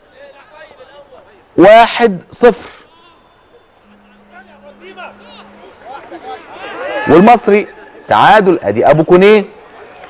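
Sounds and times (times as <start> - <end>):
quiet stadium ambience: 0.0 - 10.0
distant shouting voices: 2.8 - 10.0
low steady hum: 3.6 - 7.2.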